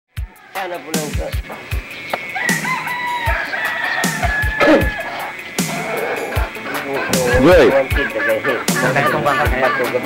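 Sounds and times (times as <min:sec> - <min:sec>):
pig squealing: 0:02.3 - 0:10.0
music with thumping beat: 0:06.4 - 0:10.0.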